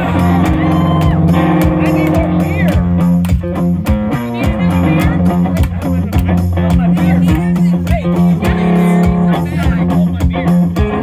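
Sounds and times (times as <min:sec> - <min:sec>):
electric guitar through amplifier: 0:00.0 - 0:11.0
percussive beat: 0:00.0 - 0:11.0.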